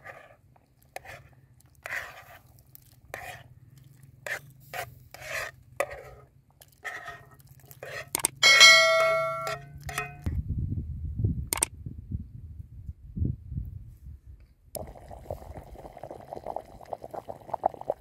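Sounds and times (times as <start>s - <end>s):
metal spoon scraping pan: 4.2s - 10.3s
spoon striking metal pan: 8.4s - 10.3s.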